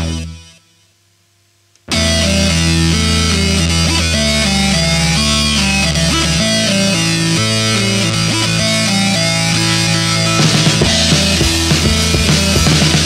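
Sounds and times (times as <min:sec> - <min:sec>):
guitar: 0:00.0 - 0:00.8, 0:01.8 - 0:13.0
synthesizer: 0:01.9 - 0:13.0
held low notes: 0:08.5 - 0:13.0.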